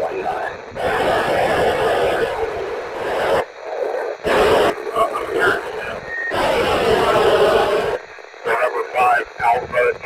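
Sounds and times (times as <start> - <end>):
garbled radio voices: 0.0 - 10.0
radio hiss: 0.0 - 10.0.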